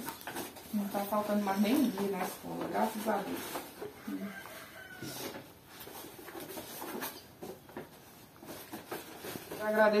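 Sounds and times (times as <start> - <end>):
paper rustling: 0.0 - 10.0.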